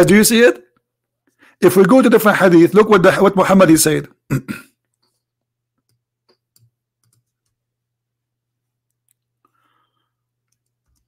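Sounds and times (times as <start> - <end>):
keyboard and mouse clicks: 5.8 - 7.6, 10.4 - 11.0.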